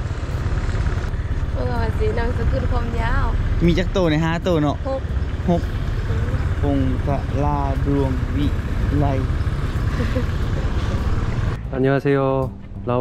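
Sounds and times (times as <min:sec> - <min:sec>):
vehicle rumble: 0:00.0 - 0:13.0
people talking: 0:01.6 - 0:09.3.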